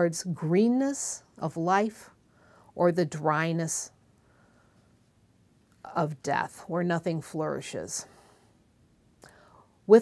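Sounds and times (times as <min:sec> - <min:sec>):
soft breath: 0:02.2 - 0:02.8, 0:04.1 - 0:05.2, 0:08.0 - 0:09.8
person speaking: 0:05.8 - 0:08.1.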